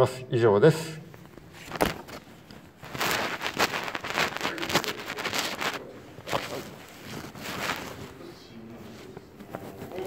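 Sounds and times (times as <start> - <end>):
paper rustling: 1.2 - 10.0.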